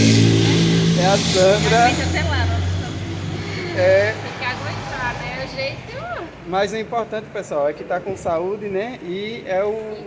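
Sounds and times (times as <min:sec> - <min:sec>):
vehicle engine droning: 0:00.0 - 0:06.4.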